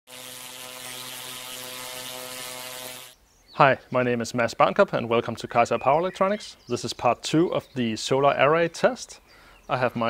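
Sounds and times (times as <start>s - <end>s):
electric arc buzzing: 0.1s - 3.2s.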